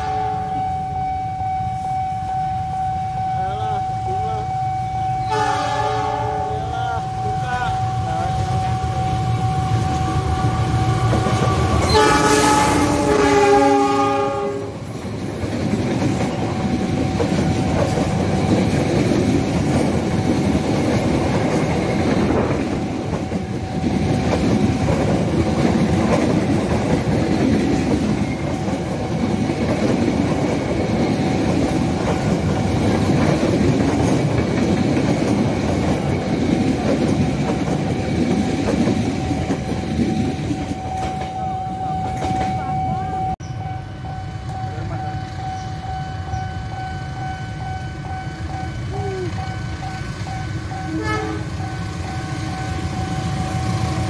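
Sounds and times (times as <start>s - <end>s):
locomotive horn: 0.0s - 8.6s, 11.5s - 14.8s, 50.7s - 51.8s
train coaches rumbling on rails: 0.0s - 54.0s.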